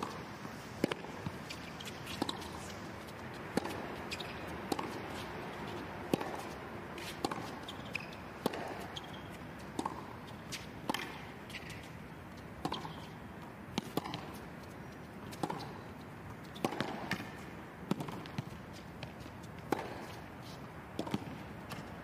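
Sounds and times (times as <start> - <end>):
rackets hitting tennis ball: 0.0 - 14.5, 16.5 - 22.0
shoe squeaks: 1.2 - 3.0, 3.6 - 5.8, 7.0 - 9.5, 11.5 - 11.9, 16.4 - 16.8.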